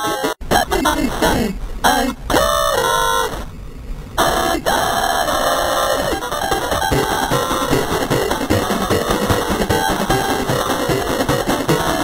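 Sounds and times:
harsh noise: 0.0 - 12.0
warped pitch-shifted tones: 0.6 - 12.0.

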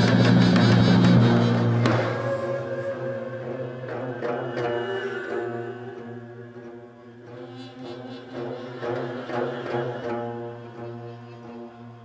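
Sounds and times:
traditional orchestra sustained tones: 0.0 - 12.0.

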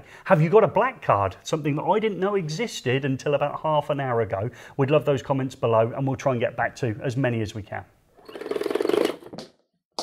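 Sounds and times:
man blowing fluttering lip buzz: 8.2 - 9.4.

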